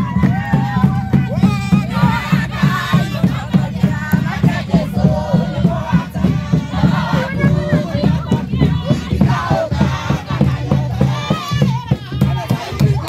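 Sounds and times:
crowd singing gospel song: 0:00.0 - 0:13.0
drum beating steady rhythm: 0:00.0 - 0:13.0.

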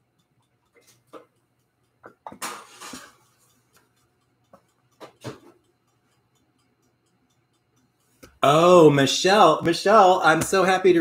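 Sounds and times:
kitchenware clatter: 0:02.0 - 0:03.2.

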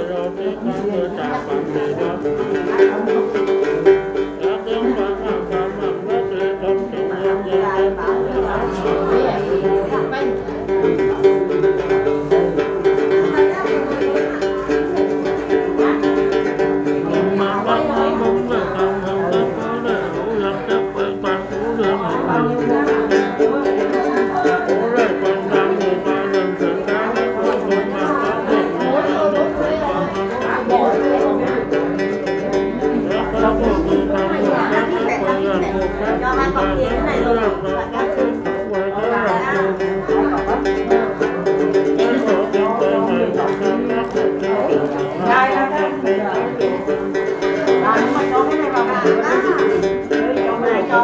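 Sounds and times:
man singing: 0:00.0 - 0:51.0
plucked gourd lute: 0:00.0 - 0:51.0.

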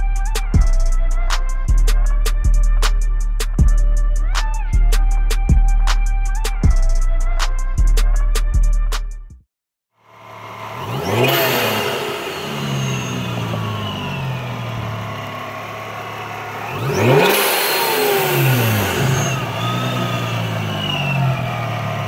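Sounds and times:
supercharger whine: 0:10.0 - 0:22.0
car engine revving: 0:10.1 - 0:22.0.

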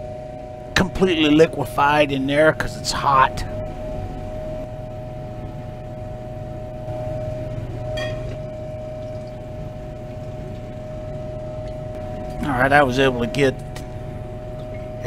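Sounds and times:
steady machine hum: 0:00.0 - 0:15.0.

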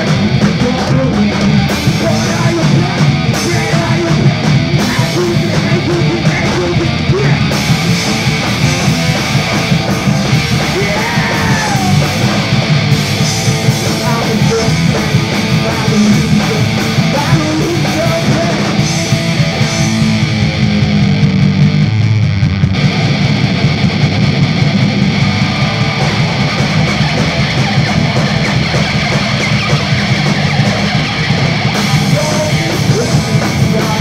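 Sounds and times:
bass guitar: 0:00.0 - 0:34.0
distorted electric guitar: 0:00.0 - 0:34.0
drums: 0:00.0 - 0:34.0.

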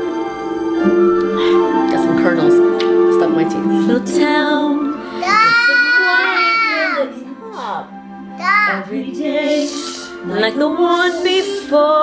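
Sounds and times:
orchestral film music: 0:00.0 - 0:12.0
woman singing high gliding notes: 0:08.7 - 0:12.0.

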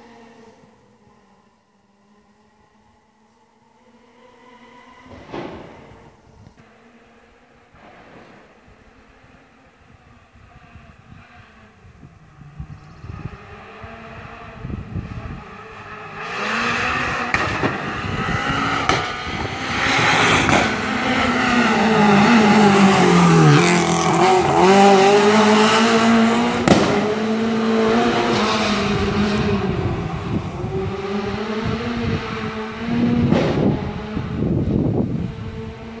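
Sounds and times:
rally car engine passing by: 0:00.0 - 0:36.0
exhaust cracks: 0:17.2 - 0:19.6, 0:26.6 - 0:27.2.

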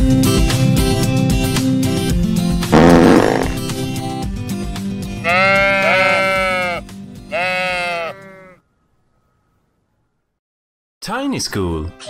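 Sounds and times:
cartoon sheep bleating: 0:05.2 - 0:08.6.

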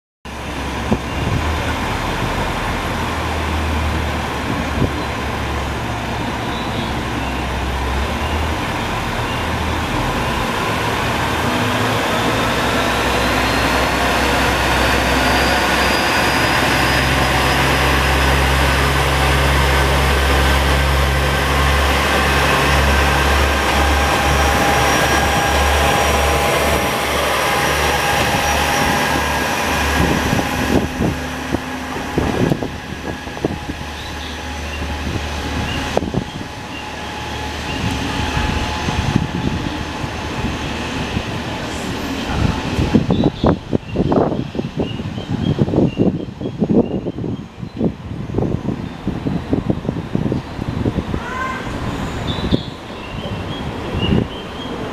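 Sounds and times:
diesel railcar engine accelerating: 0:00.3 - 0:54.9.

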